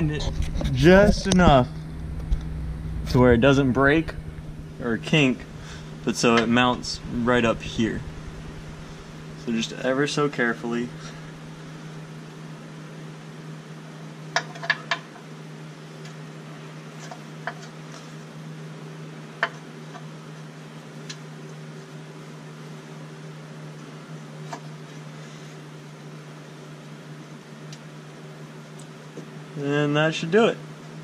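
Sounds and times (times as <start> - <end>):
low hum of running machine: 0.0 - 31.0.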